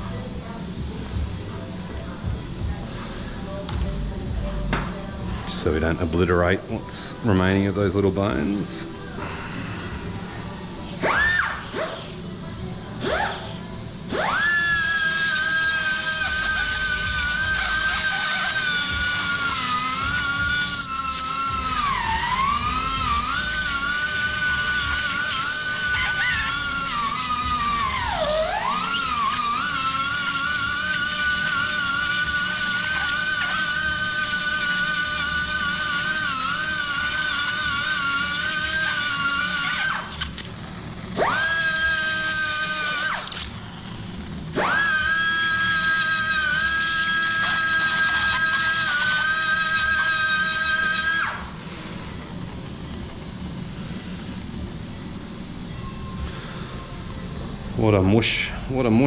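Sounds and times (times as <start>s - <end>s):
surgical burr whining: 3.8s - 59.0s.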